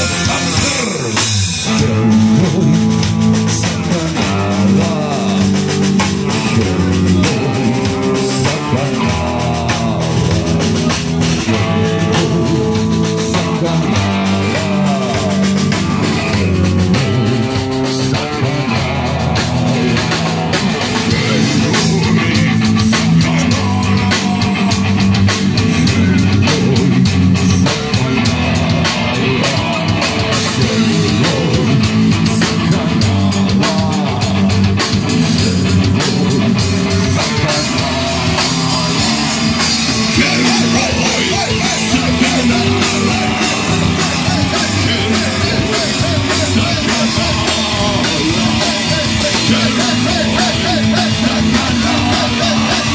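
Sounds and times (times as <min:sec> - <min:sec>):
drum kit: 0:00.0 - 0:52.9
electric guitar: 0:00.0 - 0:52.9.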